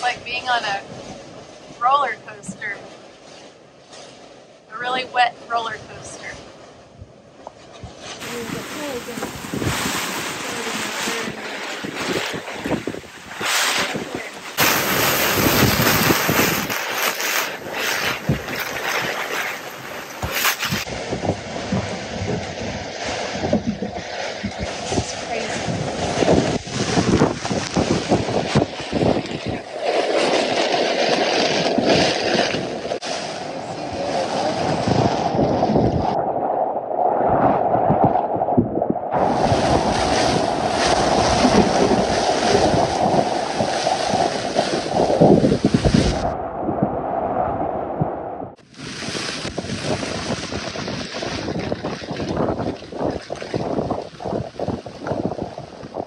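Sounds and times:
wind gusting across microphone: 0:00.0 - 0:56.0.

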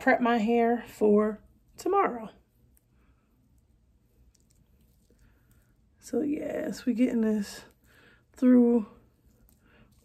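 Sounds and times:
comb squishing through wet hair: 0:01.5 - 0:10.0.

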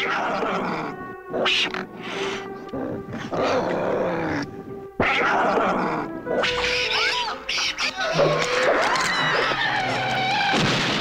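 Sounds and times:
harsh creature cries: 0:00.0 - 0:01.9, 0:02.8 - 0:10.6
droning music tone: 0:00.0 - 0:10.9.

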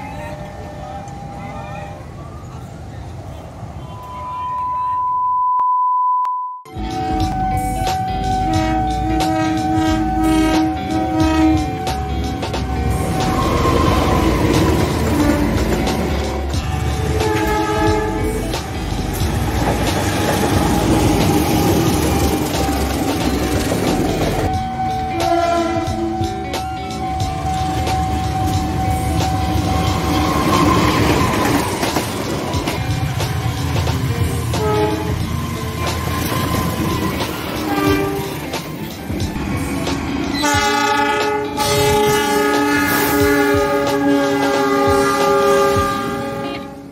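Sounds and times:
train rumbling and clattering on rails: 0:00.0 - 0:04.7, 0:06.7 - 0:46.9
locomotive horn chord: 0:06.7 - 0:23.8, 0:24.5 - 0:31.4, 0:34.3 - 0:35.6, 0:36.9 - 0:38.6, 0:40.3 - 0:46.9.

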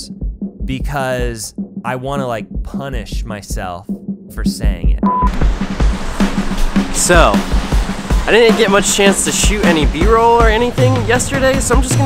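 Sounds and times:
music with thumping beat: 0:00.0 - 0:12.0
test tone beep: 0:05.0 - 0:05.4.

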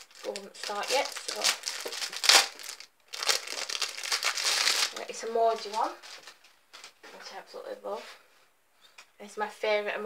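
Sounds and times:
crinkling plastic packaging: 0:00.0 - 0:07.0.

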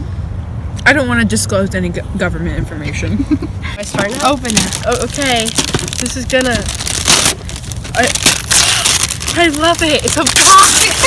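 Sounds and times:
wrapping paper tearing and crinkling: 0:03.8 - 0:11.0.

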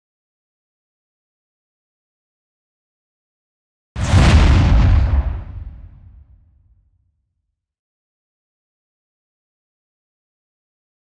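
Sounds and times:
cinematic impact boom: 0:04.0 - 0:06.5.

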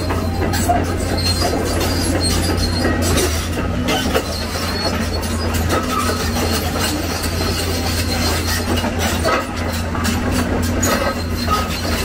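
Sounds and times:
excavator diesel engine rumble: 0:00.0 - 0:12.0
steel tracks clanking and squealing: 0:00.0 - 0:12.0.

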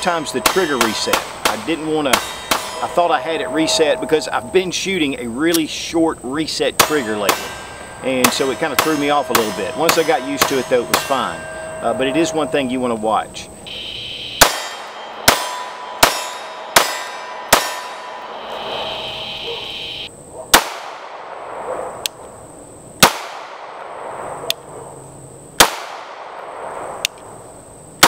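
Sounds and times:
pistol shots: 0:00.3 - 0:02.9, 0:14.4 - 0:18.0, 0:20.5 - 0:21.4, 0:23.0 - 0:24.0, 0:25.6 - 0:26.8.

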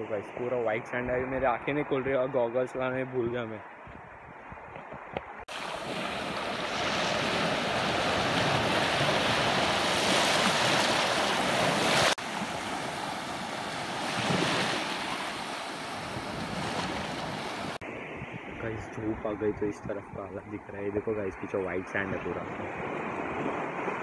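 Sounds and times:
sea waves washing up shore: 0:05.4 - 0:18.8, 0:22.2 - 0:24.0.

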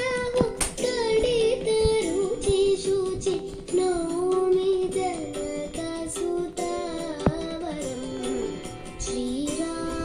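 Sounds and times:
light accompaniment: 0:00.0 - 0:10.0.

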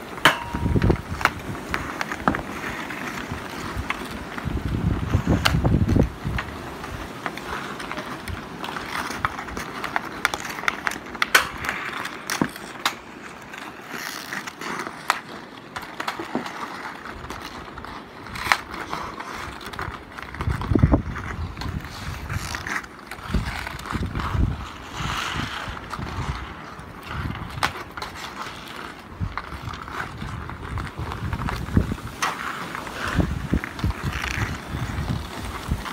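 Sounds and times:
hockey stick striking puck: 0:00.0 - 0:04.5, 0:07.2 - 0:17.5
hockey sticks clacking on puck: 0:00.0 - 0:35.9
ice skates scraping on ice: 0:00.0 - 0:35.9.

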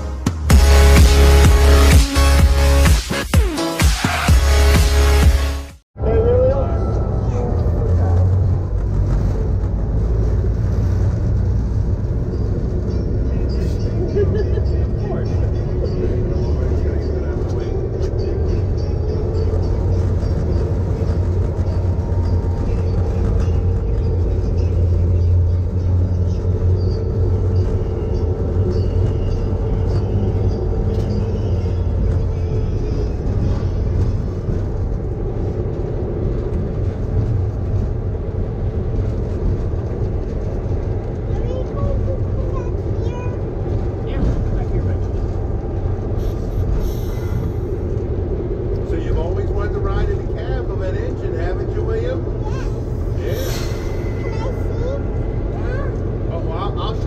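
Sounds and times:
diesel locomotive engine drone: 0:00.0 - 0:57.0
low rumble: 0:06.0 - 0:57.0.

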